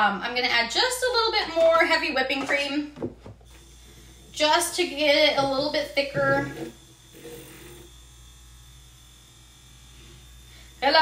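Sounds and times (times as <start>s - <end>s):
milk frother whirring: 3.3s - 11.0s.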